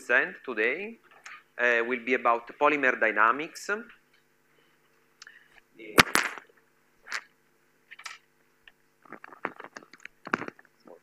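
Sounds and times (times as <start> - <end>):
microphone clicks and rustles: 5.6 - 7.3, 9.1 - 11.0.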